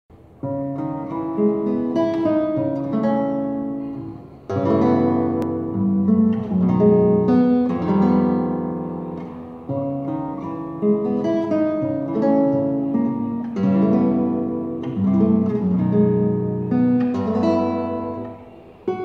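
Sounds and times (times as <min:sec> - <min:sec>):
classical guitar fingerpicked: 0:00.2 - 0:19.0.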